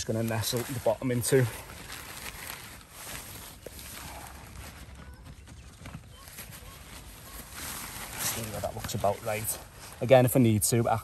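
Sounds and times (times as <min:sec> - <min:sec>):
tent fabric rustling: 0:00.0 - 0:11.0.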